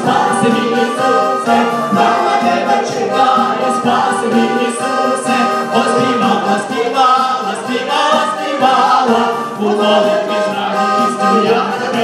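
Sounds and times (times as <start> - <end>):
electronic keyboard: 0.0 - 12.0
group singing worship song: 0.0 - 12.0.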